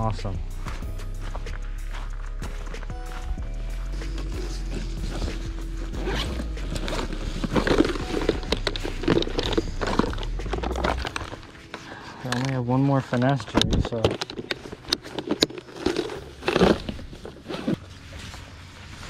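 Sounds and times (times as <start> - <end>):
background music: 0.0 - 19.0
zipper: 3.8 - 12.1, 14.5 - 18.3
plastic box clicks and rattles: 13.3 - 17.6.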